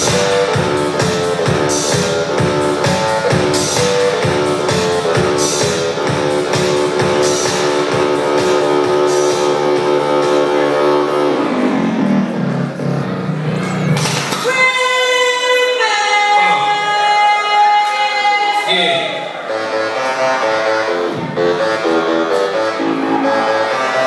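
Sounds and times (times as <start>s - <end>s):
dj set music: 0.0s - 24.0s.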